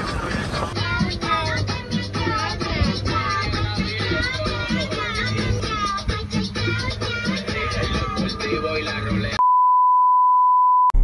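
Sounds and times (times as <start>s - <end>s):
song with singing: 0.0s - 9.4s
high-pitched censor beep: 9.4s - 11.0s.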